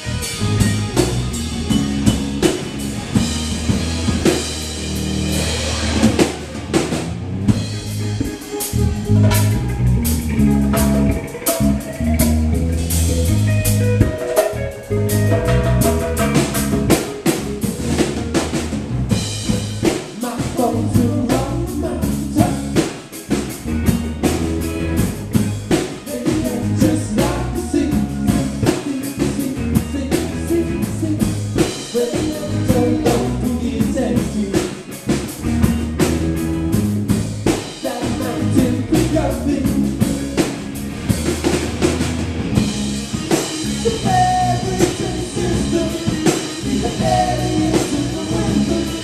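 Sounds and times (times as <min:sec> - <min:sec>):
drum kit: 0:00.0 - 0:49.0
electric guitars: 0:00.0 - 0:49.0.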